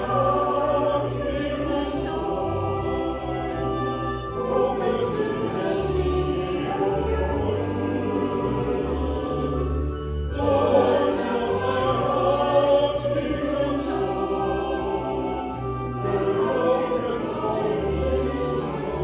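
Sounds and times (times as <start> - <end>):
church choir singing: 0.0 - 19.0.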